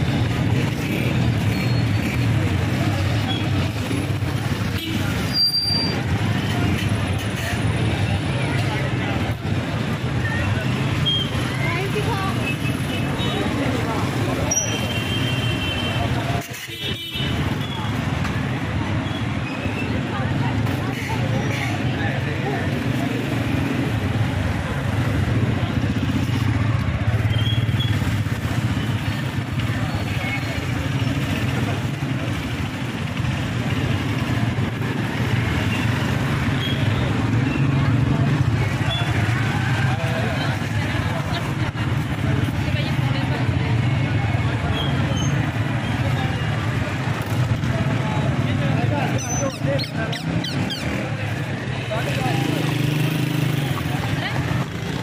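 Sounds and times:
many people talking: 0.0 - 55.0
motorcycle and car engines: 0.0 - 55.0.

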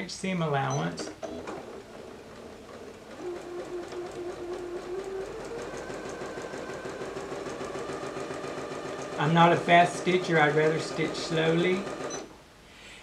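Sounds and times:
sewing machine motor hum: 1.0 - 12.3.

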